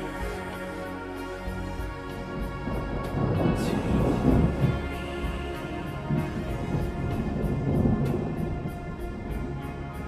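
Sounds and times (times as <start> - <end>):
meditation music: 0.0 - 10.0
thunder rumbling: 0.0 - 10.0.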